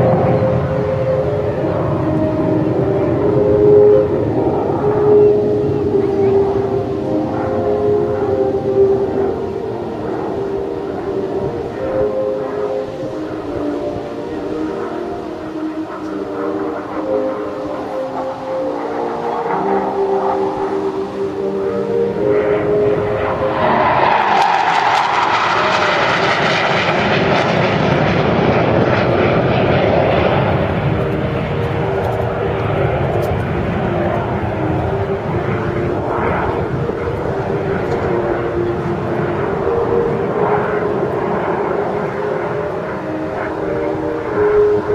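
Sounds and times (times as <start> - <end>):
jet engine whining in flight: 0.0 - 44.9.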